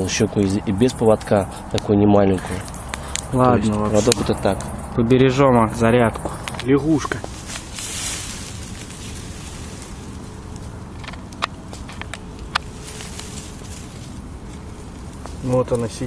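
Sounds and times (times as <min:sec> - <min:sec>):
grass rustling: 0:00.0 - 0:16.0
steady background hiss: 0:00.0 - 0:16.0
sharp clicks: 0:02.5 - 0:05.0, 0:10.5 - 0:13.3.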